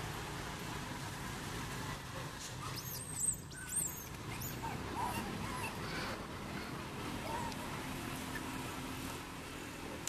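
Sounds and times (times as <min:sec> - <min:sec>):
macaques squealing: 0:02.6 - 0:05.8.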